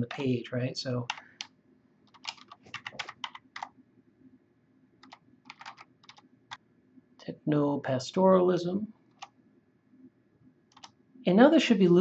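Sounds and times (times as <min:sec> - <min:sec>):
computer keyboard typing: 0:01.0 - 0:03.7, 0:05.0 - 0:06.6, 0:09.1 - 0:09.3, 0:10.7 - 0:11.0.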